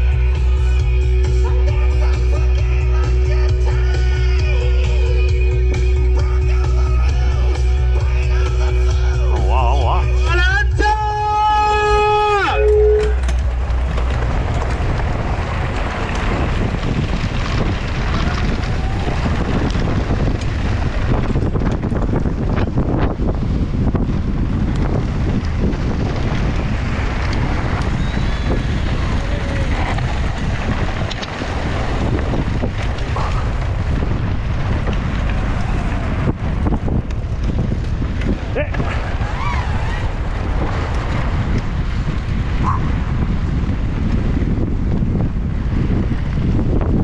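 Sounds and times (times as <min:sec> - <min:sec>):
wind buffeting microphone: 0:00.0 - 0:47.0
tyres running over loose dirt: 0:11.4 - 0:47.0
bike knocks and rattles: 0:13.0 - 0:47.0.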